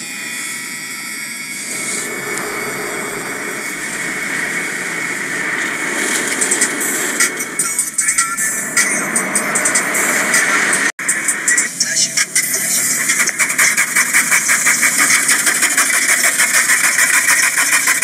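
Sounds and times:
car wash water spray: 1.7s - 10.9s, 12.7s - 18.0s.

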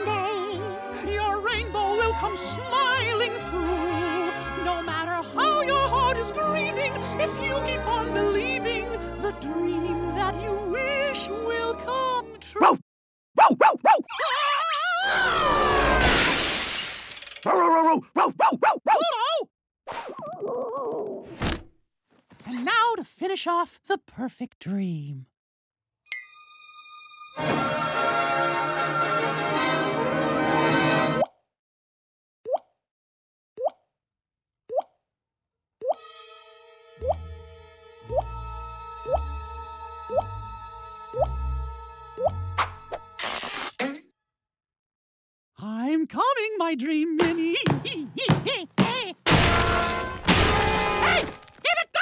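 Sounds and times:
cartoon dog howling: 13.4s - 15.8s
cartoon glass shattering crash: 15.6s - 17.5s, 43.2s - 44.1s, 49.3s - 51.6s.

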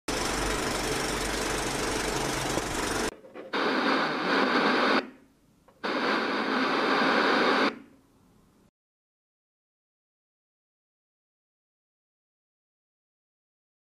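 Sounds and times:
low hum: 0.1s - 3.1s
noisy hiss: 0.4s - 8.7s
television static hiss: 3.2s - 8.7s.

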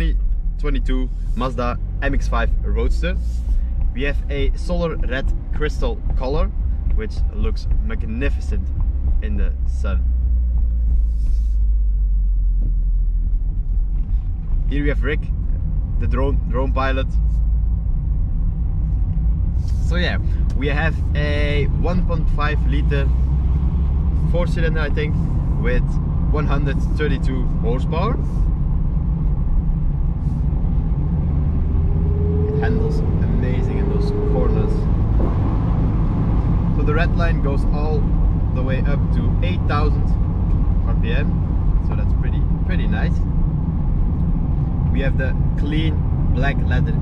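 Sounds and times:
car engine running: 0.0s - 47.0s
wind and road noise: 0.0s - 47.0s.

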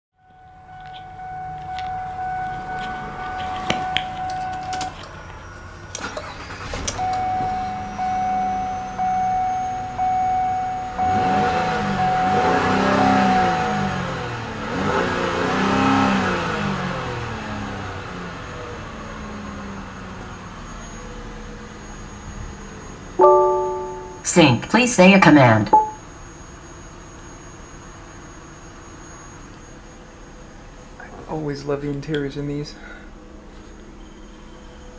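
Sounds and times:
car engine starting and revving: 5.8s - 22.2s
warning chime beeping: 6.4s - 14.2s, 23.2s - 24.6s, 25.3s - 26.0s
short electronic tone: 23.2s - 24.3s.

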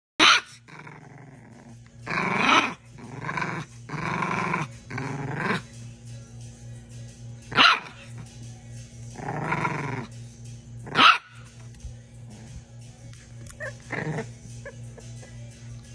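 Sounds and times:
puppies barking: 0.2s - 0.9s, 7.5s - 8.2s, 10.8s - 11.6s, 13.4s - 15.5s
puppies crying: 13.5s - 15.5s.

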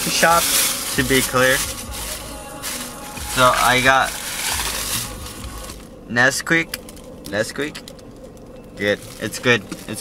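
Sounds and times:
plastic bottle handling rustle: 0.0s - 5.8s.

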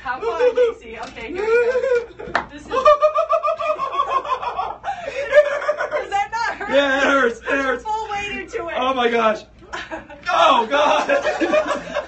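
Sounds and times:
people laughing: 0.2s - 7.8s, 9.6s - 12.0s.

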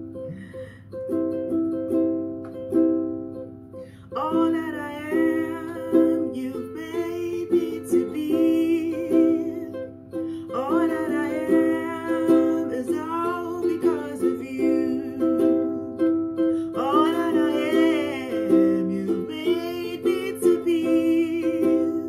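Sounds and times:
ukulele chords strummed: 0.0s - 22.0s
woman singing: 4.0s - 22.0s.

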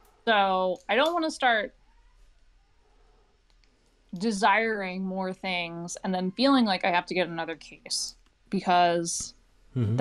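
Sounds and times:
faint clicks: 3.4s - 4.3s.

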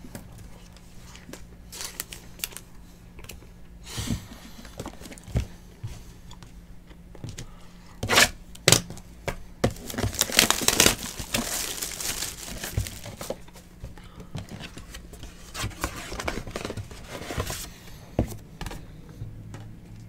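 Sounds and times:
plastic wrapping tearing: 9.7s - 13.4s.

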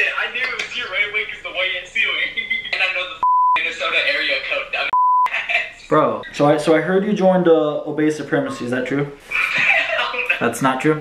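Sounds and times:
voices talking and laughing: 2.4s - 6.0s, 9.2s - 10.6s
high censor bleep: 3.2s - 3.6s, 4.9s - 5.3s.

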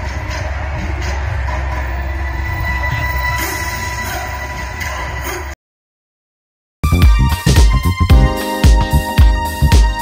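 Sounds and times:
music with deep bass and held tones: 6.8s - 10.0s.

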